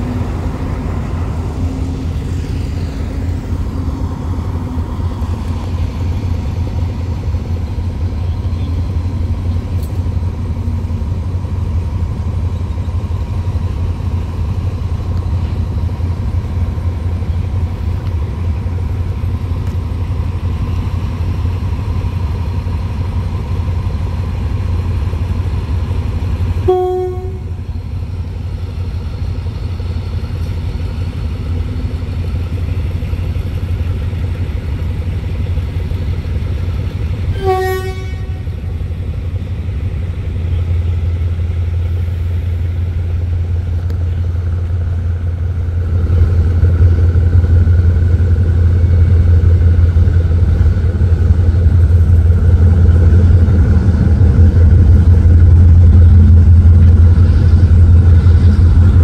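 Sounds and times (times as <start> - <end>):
low rumble: 0.0 - 59.0
locomotive horn toots: 26.6 - 27.7, 37.3 - 38.6.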